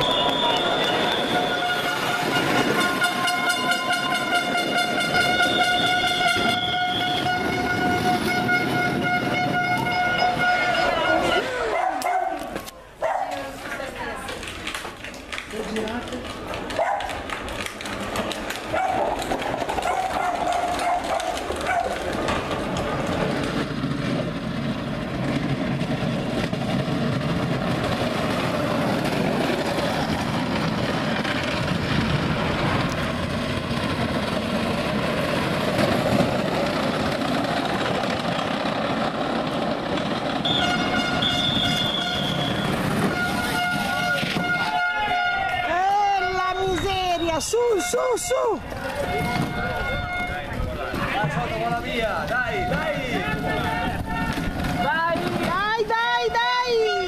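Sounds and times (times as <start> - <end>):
steady rushing noise: 21.4 - 44.5.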